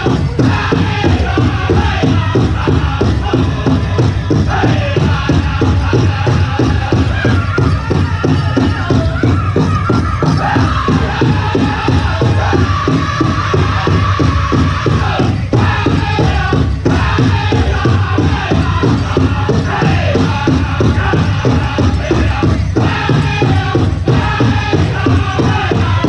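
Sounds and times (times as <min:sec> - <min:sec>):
big drum beating in unison: 0:00.0 - 0:26.0
high-pitched group singing: 0:00.0 - 0:26.0.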